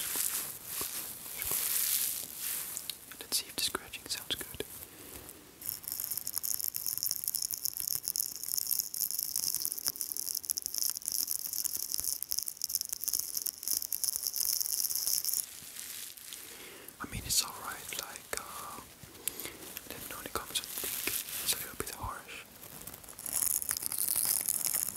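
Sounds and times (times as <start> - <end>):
soft rustles and taps: 0.0 - 5.3.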